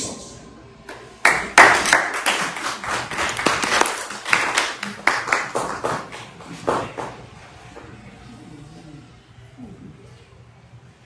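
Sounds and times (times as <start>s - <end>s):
people clapping: 0.9s - 7.9s.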